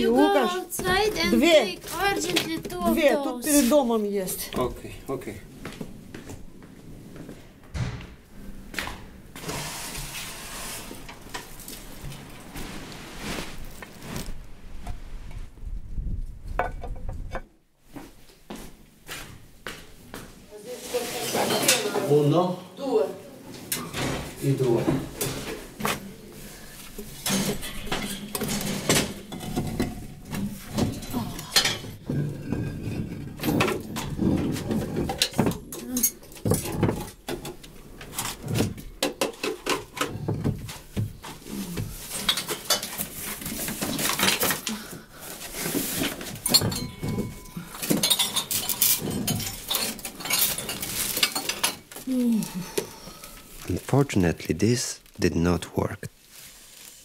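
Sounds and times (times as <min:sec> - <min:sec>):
objects knocking and clattering: 0:00.0 - 0:03.4, 0:16.4 - 0:17.6, 0:26.9 - 0:53.0
person speaking: 0:00.0 - 0:05.2, 0:53.6 - 0:56.2.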